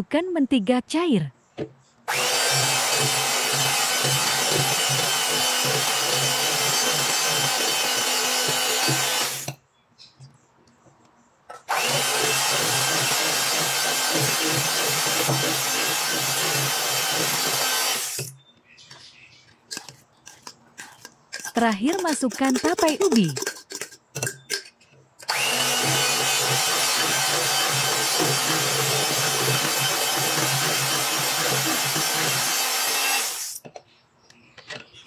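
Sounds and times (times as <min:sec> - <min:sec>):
electric hand mixer running: 0:02.1 - 0:09.5, 0:11.7 - 0:18.2, 0:25.2 - 0:33.6.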